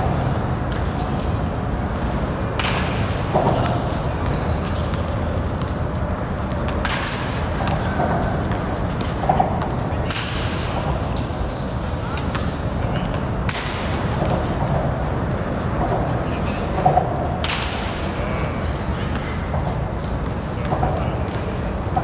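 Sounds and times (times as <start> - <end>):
baseball bat hitting balls: 2.5 - 5.5, 6.5 - 11.0.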